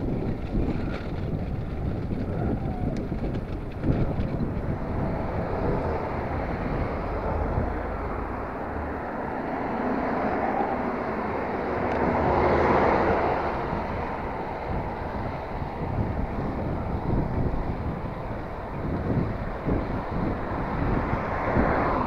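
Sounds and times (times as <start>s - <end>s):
passing cars: 0.0s - 22.0s
wind on microphone: 0.0s - 22.0s.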